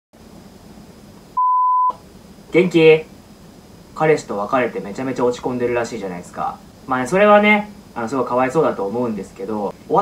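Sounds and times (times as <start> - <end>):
censor bleep: 1.4 - 2.0.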